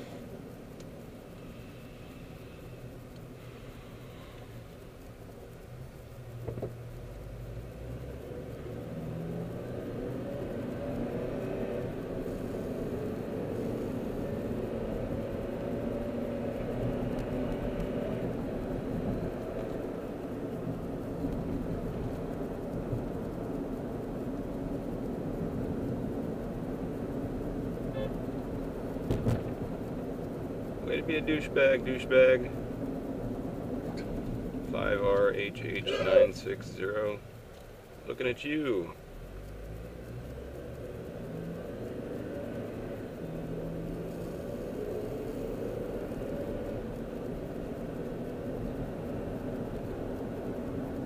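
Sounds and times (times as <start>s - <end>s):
car engine and road rumble: 0.0s - 51.0s.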